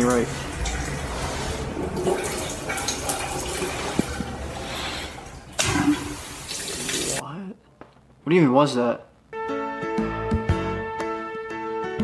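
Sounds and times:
water gushing into sink: 0:00.0 - 0:07.2.

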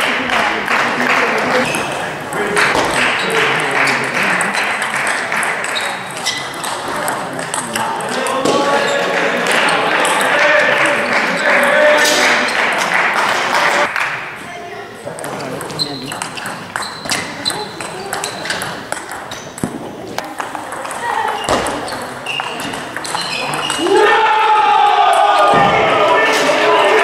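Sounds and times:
voices shouting: 0:23.2 - 0:27.0.

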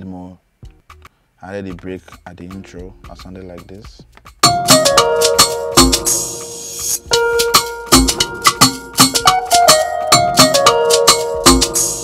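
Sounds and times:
sharp percussion hits: 0:04.3 - 0:12.0
plucked electric guitar melody: 0:04.4 - 0:12.0.

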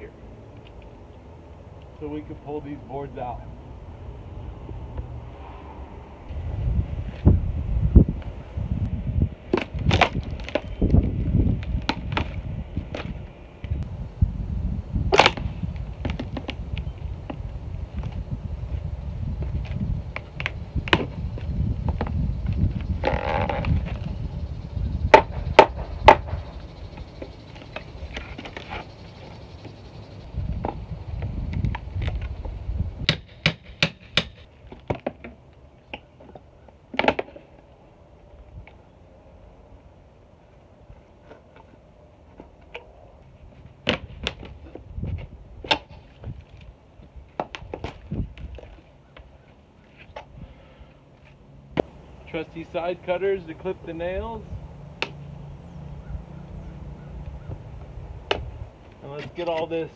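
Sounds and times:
wind rumble on microphone: 0:03.8 - 0:34.5, 0:43.4 - 0:48.9, 0:55.6 - 0:58.8.

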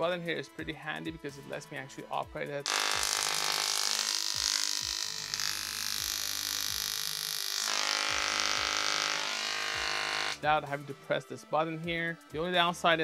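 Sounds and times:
tesla coil electrical buzz: 0:02.6 - 0:10.4.

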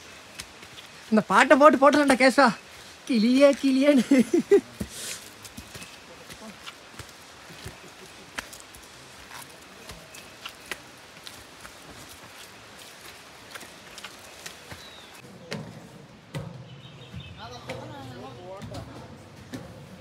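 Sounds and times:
outdoor hiss: 0:00.0 - 0:16.2
footsteps on stone steps: 0:00.0 - 0:20.0.

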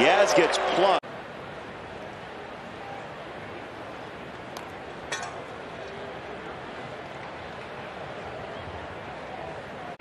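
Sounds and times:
crowd murmur: 0:01.3 - 0:10.0.

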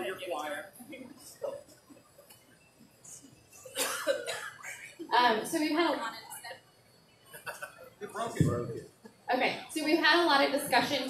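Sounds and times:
person coughing: 0:03.7 - 0:04.8.

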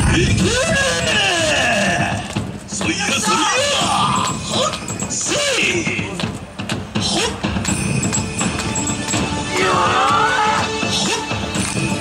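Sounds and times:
dance music from outdoor loudspeaker: 0:00.0 - 0:12.0
dancers shouting a call: 0:02.9 - 0:05.8, 0:09.4 - 0:11.5.

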